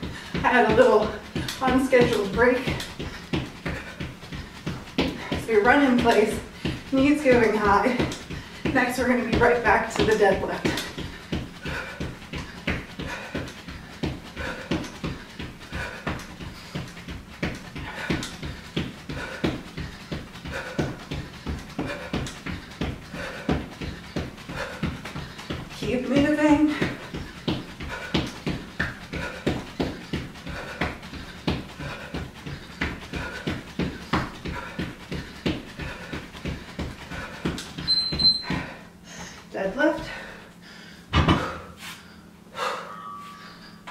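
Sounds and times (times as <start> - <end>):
footsteps running on wooden floor: 0.0 - 38.8
interval timer beep: 37.9 - 38.4.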